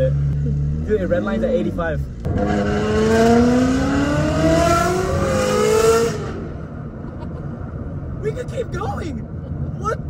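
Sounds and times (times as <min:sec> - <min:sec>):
car engine revving: 0:00.0 - 0:07.0.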